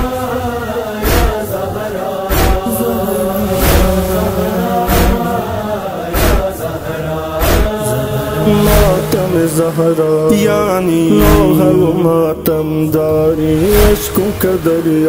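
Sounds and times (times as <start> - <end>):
male voices chanting: 0.0 - 15.0
chest-beat thumps: 7.5 - 9.4, 10.3 - 12.8.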